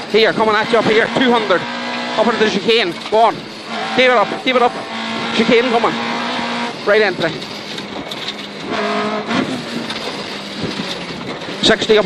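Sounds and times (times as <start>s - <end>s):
car engine downshifting: 0.0s - 12.0s.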